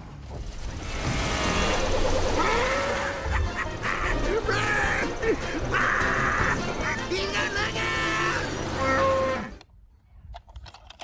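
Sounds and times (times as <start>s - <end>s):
vehicle sounds: 0.4s - 9.6s
rush of noise: 0.7s - 7.0s
soundtrack music: 1.2s - 9.5s.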